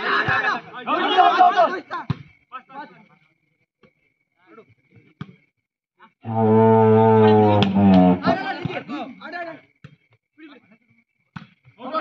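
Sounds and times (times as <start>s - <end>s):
wavering bleat-like call: 6.3s - 8.4s.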